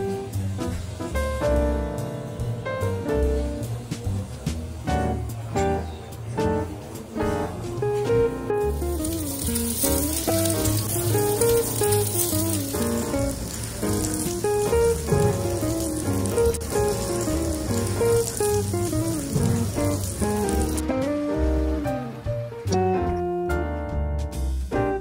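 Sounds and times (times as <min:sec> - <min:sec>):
background music with held notes: 0:00.0 - 0:25.0
beef sizzling on iron grill plate: 0:08.5 - 0:20.9.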